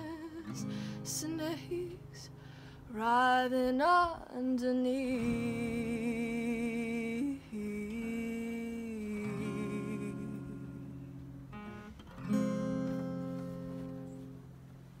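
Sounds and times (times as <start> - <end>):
acoustic guitar chords strummed: 5.0 - 15.0.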